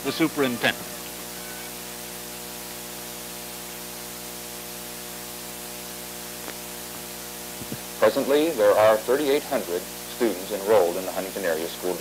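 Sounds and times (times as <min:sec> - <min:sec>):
electrical mains hum: 0:00.0 - 0:12.0
recording hiss: 0:00.0 - 0:12.0.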